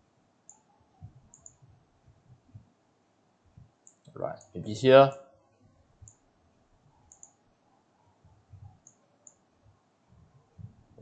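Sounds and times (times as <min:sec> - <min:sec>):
faint computer mouse clicks: 0:00.5 - 0:00.7, 0:01.3 - 0:01.6, 0:07.1 - 0:07.4.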